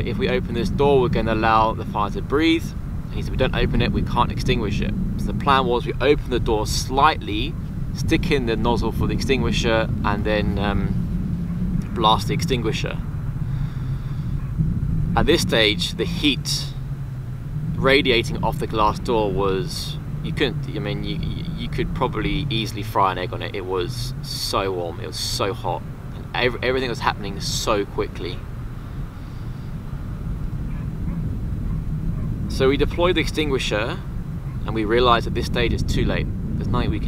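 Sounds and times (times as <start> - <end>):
low background rumble: 0.0 - 37.0
wind buffeting microphone: 0.0 - 37.0.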